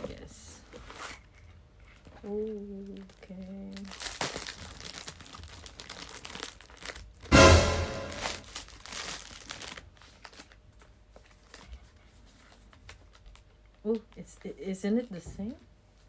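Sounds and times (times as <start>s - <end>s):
paper and plastic crinkling: 0.0s - 7.3s, 8.2s - 16.0s
short loud burst: 7.3s - 8.4s.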